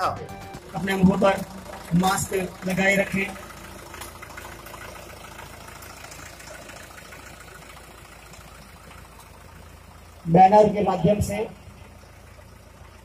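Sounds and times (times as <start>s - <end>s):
tractor diesel engine running: 0.0s - 13.0s.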